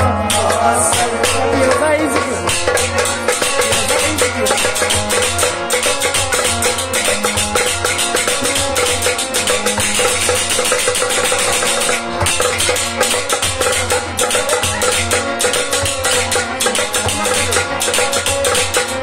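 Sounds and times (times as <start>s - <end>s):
hand percussion rhythm: 0.0s - 19.0s
harmonium melody: 0.0s - 19.0s.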